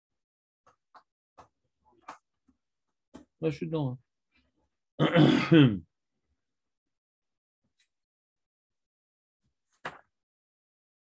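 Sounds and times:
man clearing his throat: 5.0 - 5.9.

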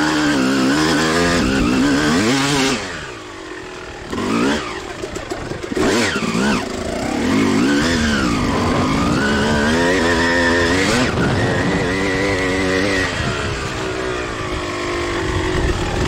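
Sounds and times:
two-stroke motorcycle engine revving: 0.0 - 16.0.

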